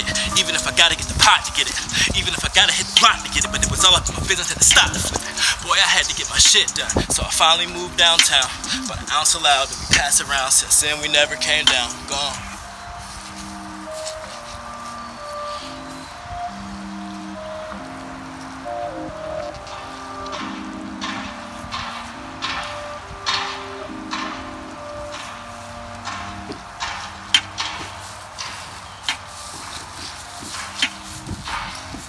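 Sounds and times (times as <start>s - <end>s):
instrumental hip-hop beat: 0.0s - 32.0s.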